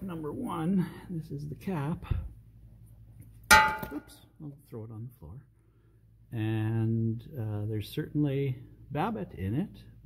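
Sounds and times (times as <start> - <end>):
metal part dropping with clang: 3.5 - 4.2.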